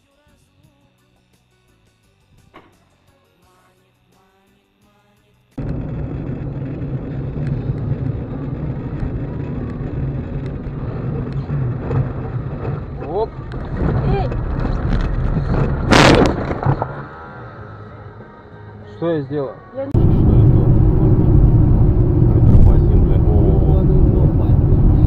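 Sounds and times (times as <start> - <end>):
car engine and tyre noise: 5.6 - 18.5, 20.0 - 25.0.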